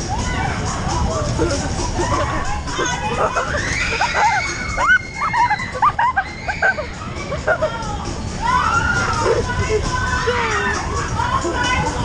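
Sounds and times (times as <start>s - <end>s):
riders shrieking and squealing: 1.7s - 7.5s.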